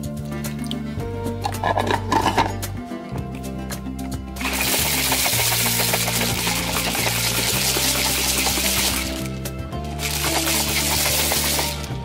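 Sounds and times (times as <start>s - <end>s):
low background music: 0.0s - 12.0s
blender motor running: 10.0s - 11.9s.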